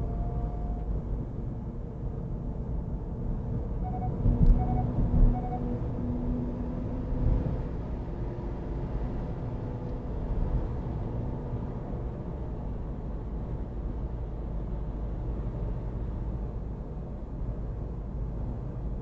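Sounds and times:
road and engine rumble: 0.0 - 19.0
short beeps: 3.8 - 5.8.

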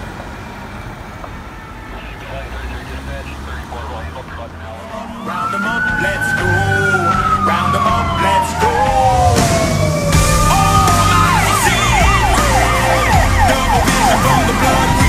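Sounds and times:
siren wail: 0.6 - 15.0
siren yelp: 1.4 - 15.0
low steady drone: 1.9 - 15.0.

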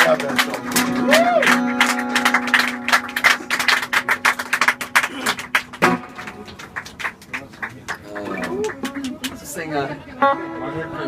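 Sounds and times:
guitar sustained note: 0.0 - 6.7.

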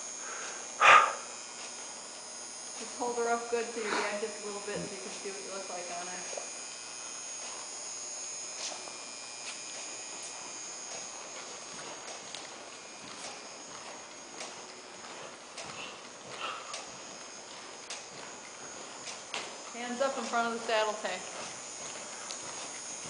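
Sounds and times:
steady high hum: 0.0 - 23.0
horse hoofbeats on soft dirt: 2.6 - 7.8, 8.4 - 23.0.

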